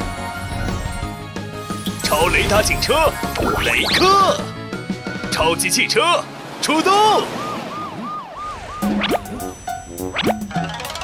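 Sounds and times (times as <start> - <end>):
upbeat children's song music: 0.0 - 6.2
rising boing slide effect: 8.1 - 11.0.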